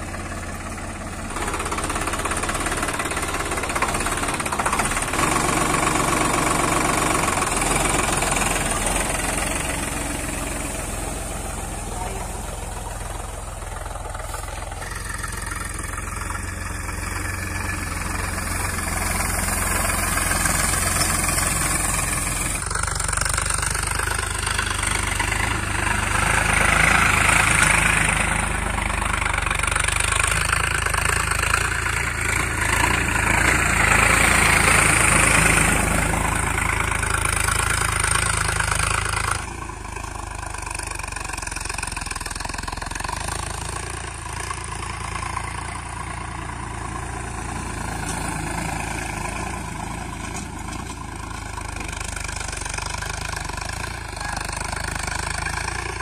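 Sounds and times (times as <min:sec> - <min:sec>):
diesel tractor engine running: 0:00.0 - 0:56.0.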